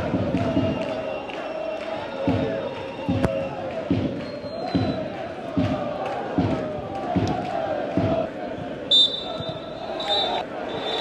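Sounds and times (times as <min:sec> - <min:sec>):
crowd chanting: 0:00.0 - 0:11.0
bass drum beating: 0:02.3 - 0:08.3
referee's whistle blast: 0:08.9 - 0:11.0.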